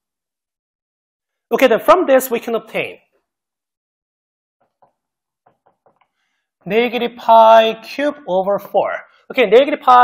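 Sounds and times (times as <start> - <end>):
marker tapping on whiteboard: 4.6 - 6.1.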